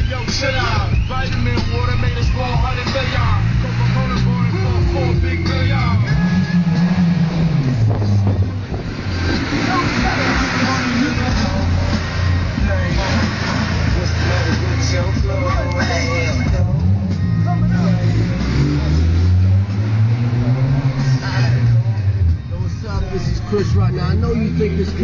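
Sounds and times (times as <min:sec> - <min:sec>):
rap music with vocals: 0:00.0 - 0:25.0
vehicle engine revving: 0:00.0 - 0:25.0.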